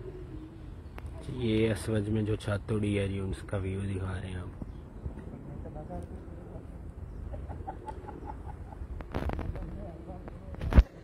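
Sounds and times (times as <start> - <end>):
steady outdoor rumble: 0.0 - 11.0
bird clucking calls: 7.1 - 9.3.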